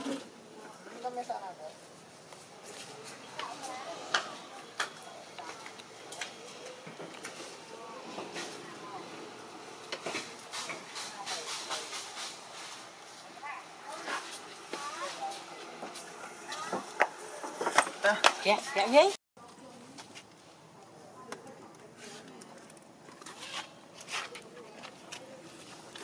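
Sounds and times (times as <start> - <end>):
indistinct voices: 0.0 - 20.0.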